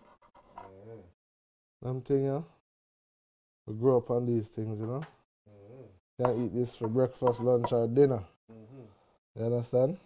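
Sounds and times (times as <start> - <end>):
man murmuring: 5.5 - 6.6, 8.5 - 9.0.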